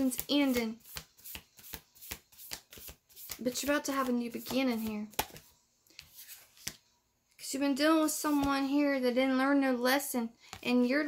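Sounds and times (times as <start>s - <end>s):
cards being shuffled: 0.0s - 6.9s.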